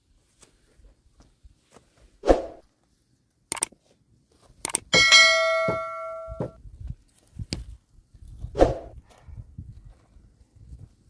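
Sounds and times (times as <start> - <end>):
mouse clicks: 3.5 - 3.7, 4.6 - 4.9
bell chime: 5.0 - 6.6.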